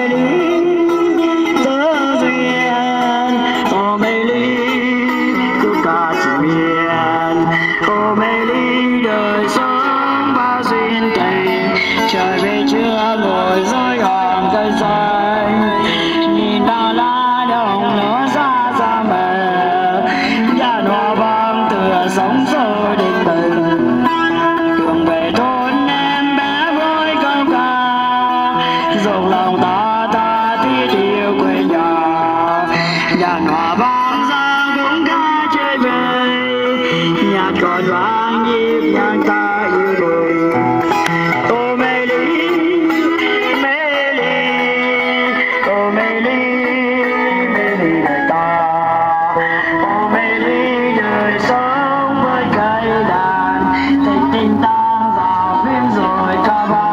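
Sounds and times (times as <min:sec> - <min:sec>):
gliding lead melody: 0:00.0 - 0:56.9
guitar accompaniment: 0:00.0 - 0:56.9.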